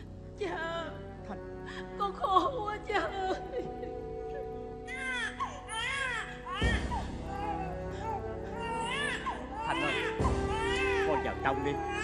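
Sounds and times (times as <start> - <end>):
held notes of accompaniment music: 0.0 - 12.0
woman sobbing and wailing: 0.4 - 11.3.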